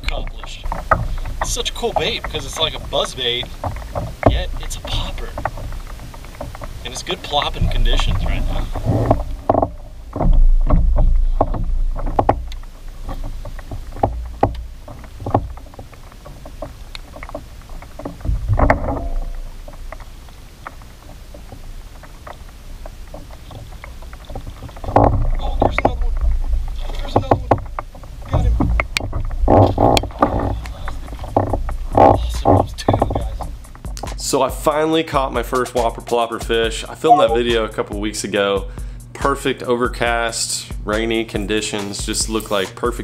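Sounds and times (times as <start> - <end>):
small clicks and knocks: 0.0 - 34.7
low rumble: 0.0 - 35.4.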